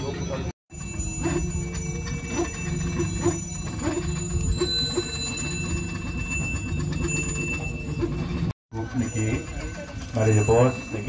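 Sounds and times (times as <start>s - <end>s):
hand bell ringing: 0.0s - 11.0s.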